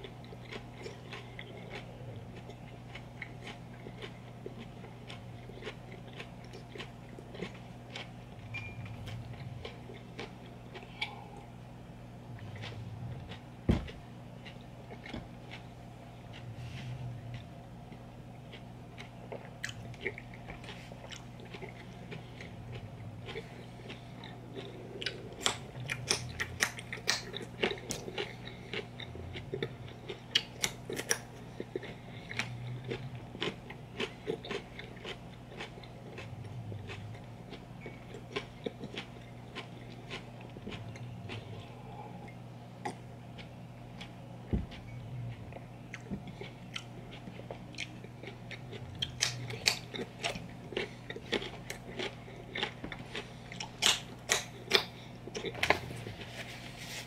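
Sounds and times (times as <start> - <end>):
crunching and chewing carrots: 0.0 - 57.0.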